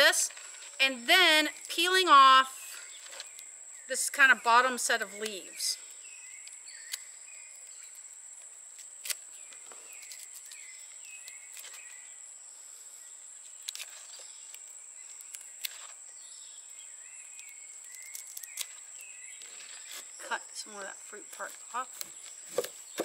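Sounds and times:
short chirping calls: 2.5 - 8.1, 9.4 - 12.2, 13.6 - 23.0
dry leaves crackling: 8.7 - 12.1, 17.3 - 23.0.

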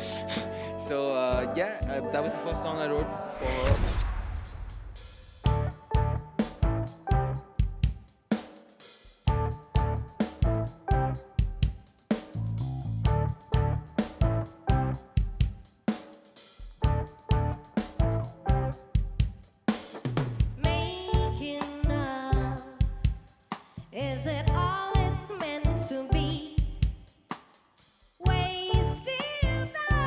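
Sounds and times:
drum kit beat: 0.0 - 30.0
woman singing: 20.6 - 23.1, 23.8 - 26.8, 28.2 - 30.0.

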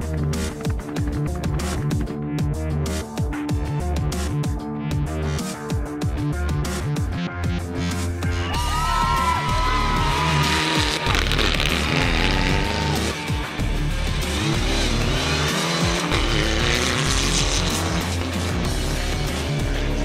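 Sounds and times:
electronic music with bass beat: 0.0 - 20.0
rally car engine revving: 9.5 - 20.0.

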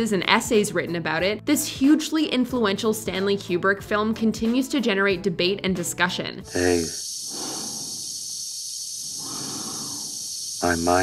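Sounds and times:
steady air hiss: 6.5 - 11.0
slow breathing in helmet: 7.3 - 8.3, 9.1 - 10.4.

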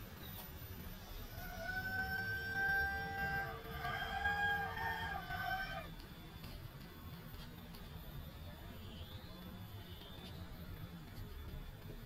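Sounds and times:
rooster crowing: 1.4 - 5.9.

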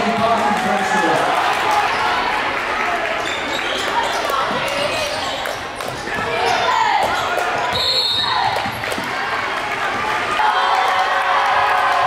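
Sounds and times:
voices in a hall: 0.0 - 12.0
basketball bouncing on court: 5.8 - 9.2
referee's whistle: 7.7 - 8.5.

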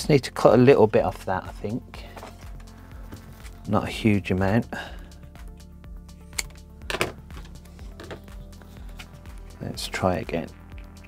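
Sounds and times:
background music: 0.0 - 11.0
scissors cutting tubing: 6.3 - 6.6.

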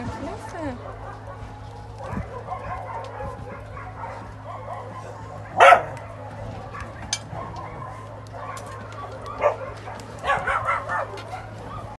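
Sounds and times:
dogs whining and yipping: 0.0 - 11.9
dog barking: 0.4 - 11.9.

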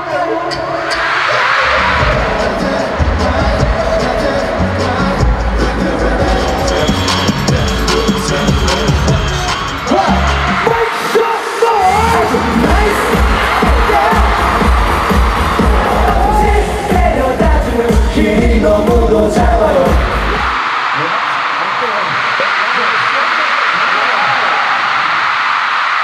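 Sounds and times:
live pop music with heavy bass: 0.0 - 21.1
person singing: 1.6 - 20.5.

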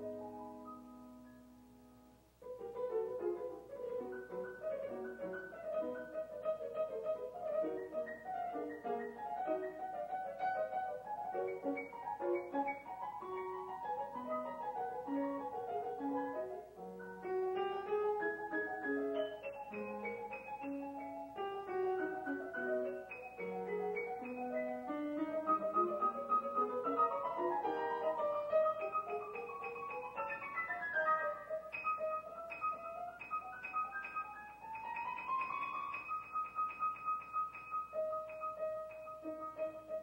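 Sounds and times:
solo piano playing: 0.0 - 40.0.

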